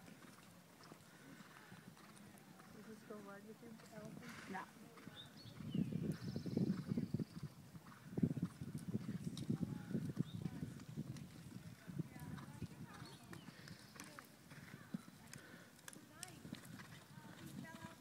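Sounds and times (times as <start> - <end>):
horse hoofbeats on sand: 7.8 - 18.0
faint voices: 11.7 - 18.0.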